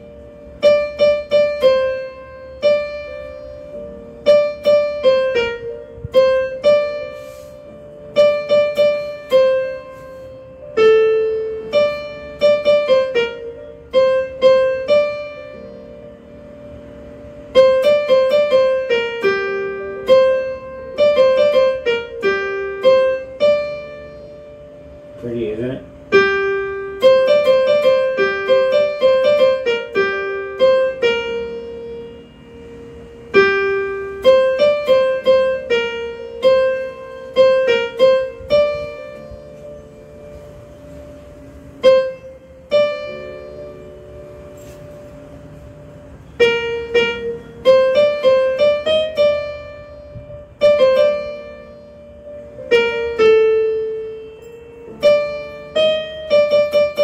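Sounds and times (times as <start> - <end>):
electronic keyboard melody: 0.0 - 57.0.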